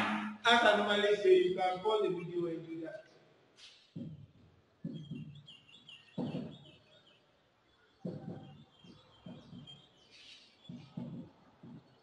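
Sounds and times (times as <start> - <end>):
small birds chirping: 3.0 - 12.0
marker writing on whiteboard: 8.0 - 12.0.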